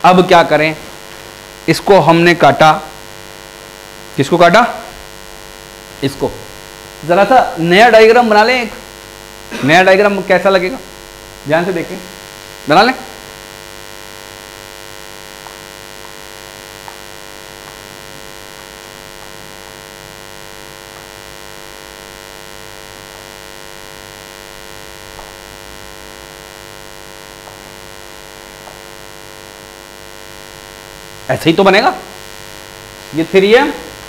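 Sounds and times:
electrical mains hum: 0:00.0 - 0:34.0.

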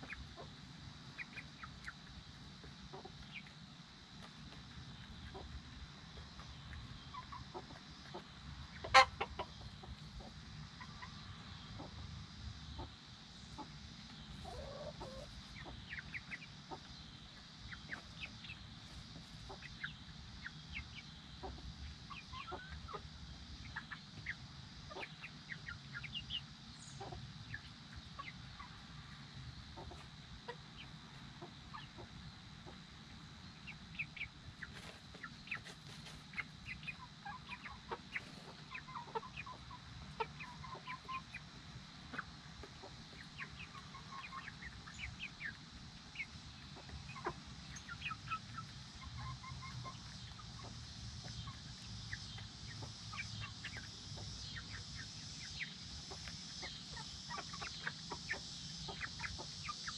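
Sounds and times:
chicks peeping and clucking: 0:00.0 - 0:59.9.

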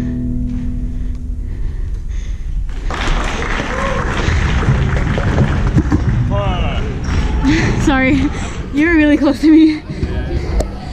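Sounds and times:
low rumble: 0:00.0 - 0:10.9
people talking and calling out: 0:06.2 - 0:10.9.

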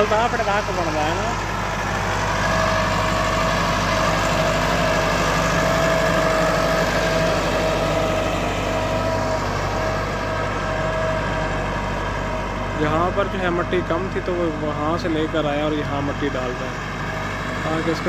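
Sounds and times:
tractor diesel engine running: 0:00.0 - 0:18.0.

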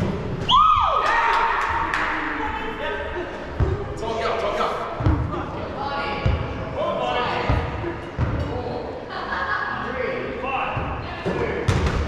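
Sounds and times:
chatter of players: 0:01.4 - 0:12.0.

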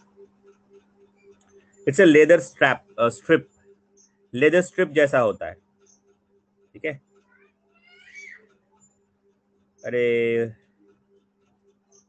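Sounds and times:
cat meowing: 0:07.8 - 0:08.4.

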